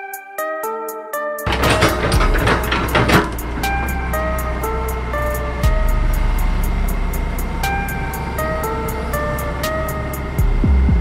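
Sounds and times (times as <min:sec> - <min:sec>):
plucked guitar music: 0:01.4 - 0:10.7
heavy diesel machinery running: 0:01.5 - 0:11.0.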